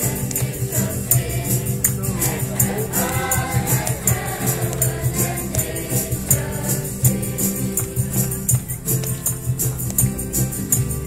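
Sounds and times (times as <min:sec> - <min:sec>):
choir singing a carol: 0:00.0 - 0:08.9
instrumental accompaniment: 0:00.0 - 0:11.0
jingling percussion beat: 0:00.0 - 0:11.0.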